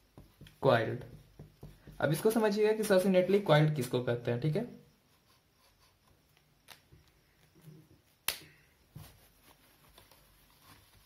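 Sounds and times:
sharp snap: 8.2s - 8.6s.

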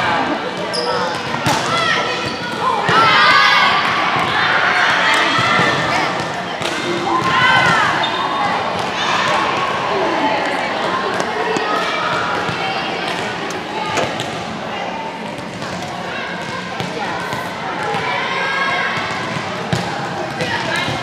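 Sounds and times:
players chattering: 0.0s - 21.0s
volleyballs hitting gym floor: 11.1s - 14.5s.

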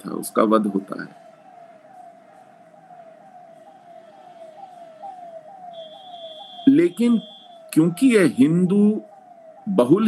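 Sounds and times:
faint siren: 0.0s - 10.0s.

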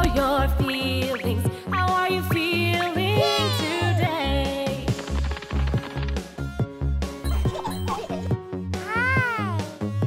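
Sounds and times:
children's song backing track: 0.0s - 5.0s.

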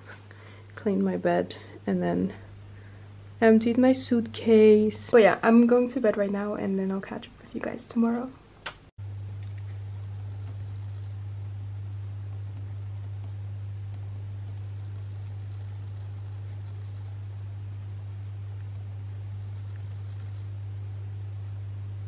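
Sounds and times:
low-pitched hum: 0.0s - 22.0s.

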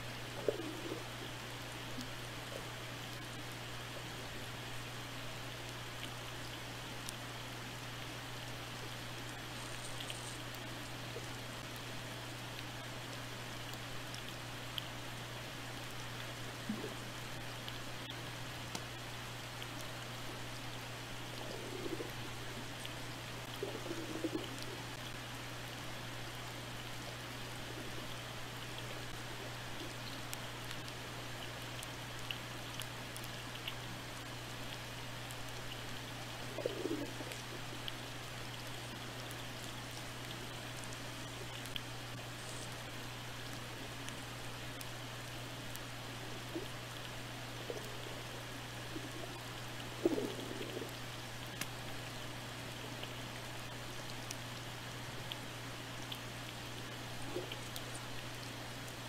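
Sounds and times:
faint clicks and crackle: 0.0s - 59.0s
steady low hum: 0.0s - 59.0s.

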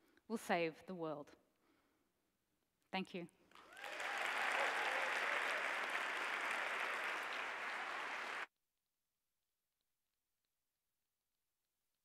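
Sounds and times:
audience applauding: 3.6s - 8.5s.

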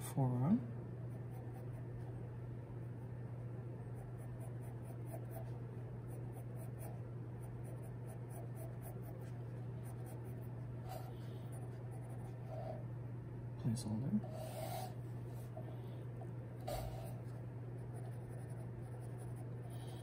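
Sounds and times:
steady low hum: 0.0s - 20.0s
pencil scratching on paper: 1.1s - 2.0s, 3.9s - 12.8s, 14.2s - 15.7s, 16.6s - 20.0s.

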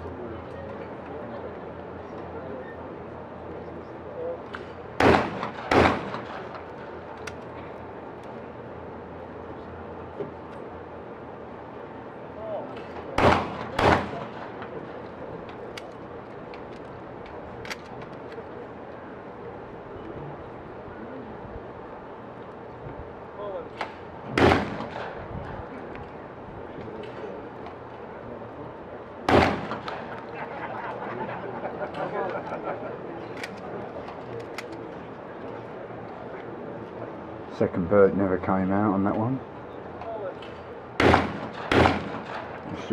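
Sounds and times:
shotgun shots: 5.0s - 6.6s, 13.2s - 14.6s, 24.3s - 25.2s, 29.3s - 30.1s, 41.0s - 42.6s.

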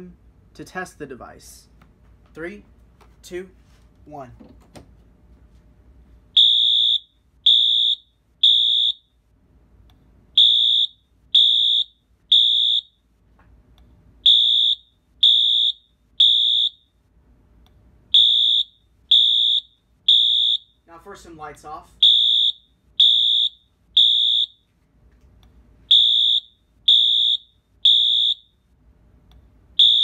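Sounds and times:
fire alarm horn blasts: 6.4s - 9.2s, 10.4s - 13.1s, 14.2s - 17.0s, 18.1s - 21.0s, 22.0s - 24.7s, 25.9s - 28.7s, 29.8s - 30.0s.

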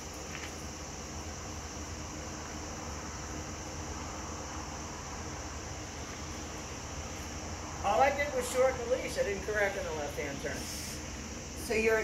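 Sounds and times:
high hiss: 0.0s - 12.0s.

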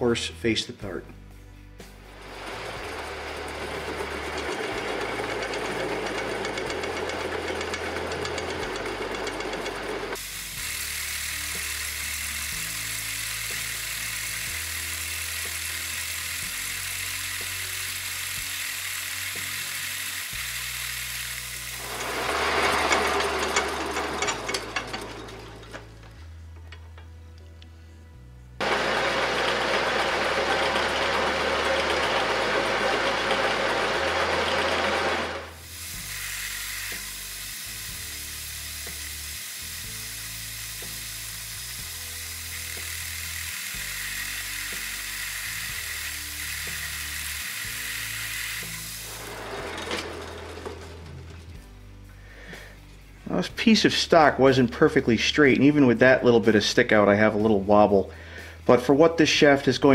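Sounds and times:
background music with bass line: 0.0s - 5.7s, 50.6s - 59.9s
metal lathe cutting: 2.1s - 25.7s, 28.6s - 51.0s.

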